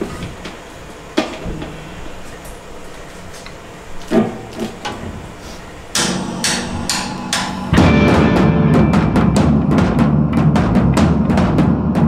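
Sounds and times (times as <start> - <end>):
ringing guitar chord: 6.0 - 10.0
drums and electric guitar hits: 6.0 - 12.0.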